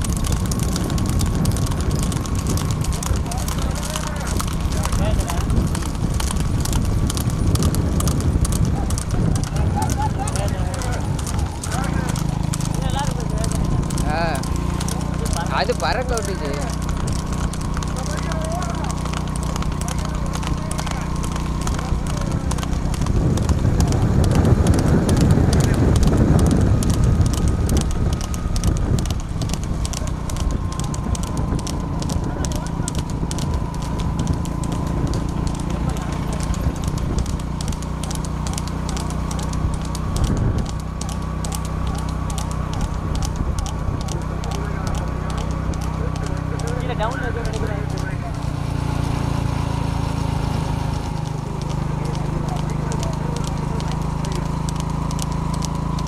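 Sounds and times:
hooves clattering on asphalt: 0:00.0 - 0:56.0.

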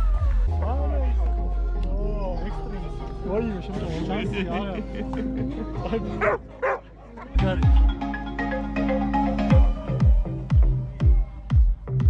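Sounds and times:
background music with held notes: 0:00.0 - 0:12.0
people laughing: 0:03.7 - 0:08.1.

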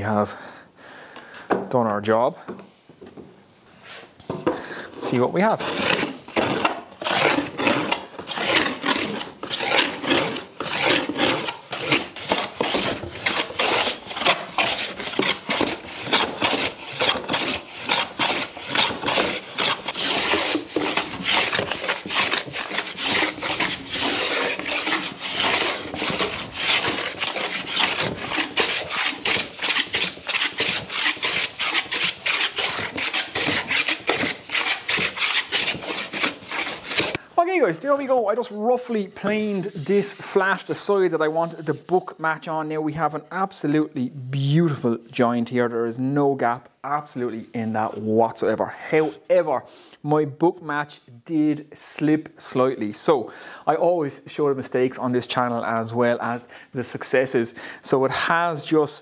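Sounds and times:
hand plane shaving wood: 0:05.0 - 0:37.2, 0:38.4 - 0:42.0.

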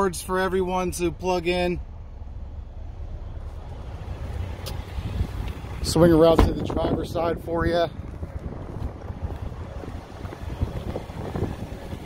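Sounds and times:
wind buffeting microphone: 0:03.8 - 0:12.0.

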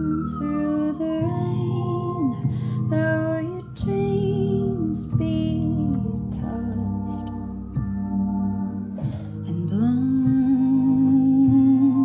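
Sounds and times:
woman singing wordless notes: 0:00.0 - 0:07.6, 0:09.2 - 0:12.0
digital piano chords: 0:00.0 - 0:12.0.

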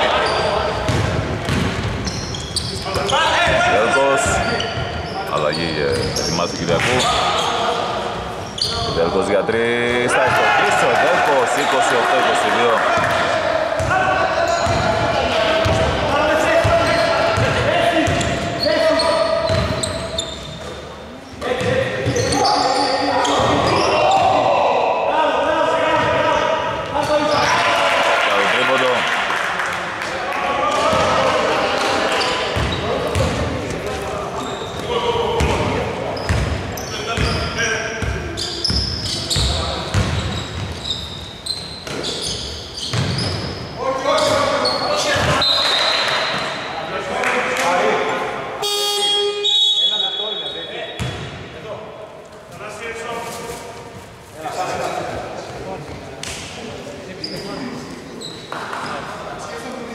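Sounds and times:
voices echoing: 0:00.0 - 0:59.9
basketball bouncing on hardwood: 0:00.9 - 0:01.9.

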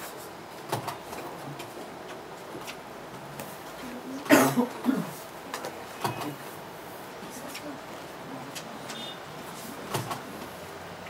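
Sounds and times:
person coughing: 0:04.3 - 0:05.2.

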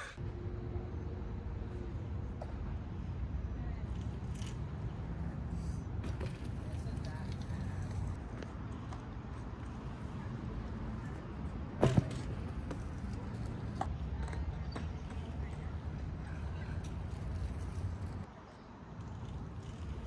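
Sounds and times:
bmx bike rolling on concrete: 0:03.7 - 0:20.0.

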